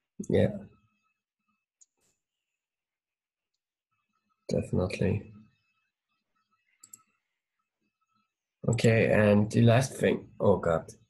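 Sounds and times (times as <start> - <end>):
computer mouse clicks: 6.7 - 7.1.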